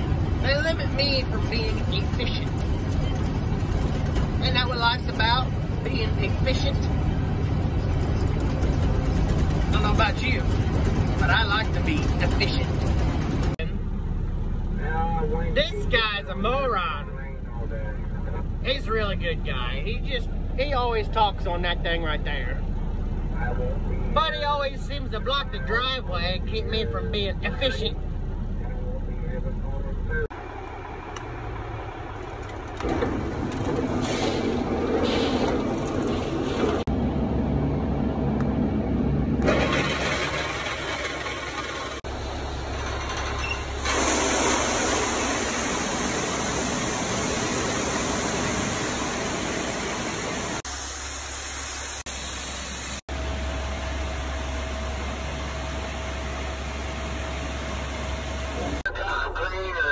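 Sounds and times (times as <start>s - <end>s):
truck engine running: 0.0s - 59.9s.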